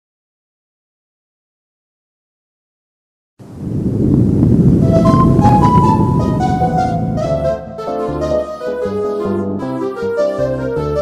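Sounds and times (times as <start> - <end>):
deep rumbling swell: 3.8 - 8.5
synthesizer theme music: 4.8 - 11.0.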